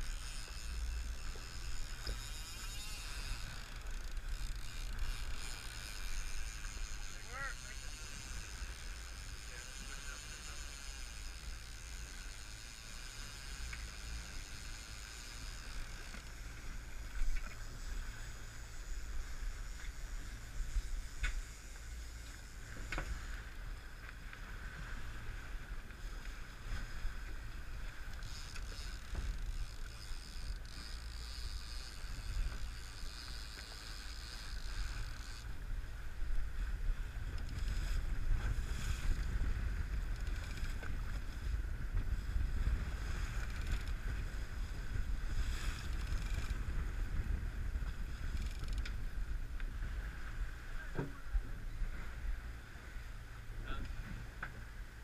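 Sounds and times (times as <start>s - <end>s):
choppy sea: 0.0s - 55.0s
wind: 0.0s - 55.0s.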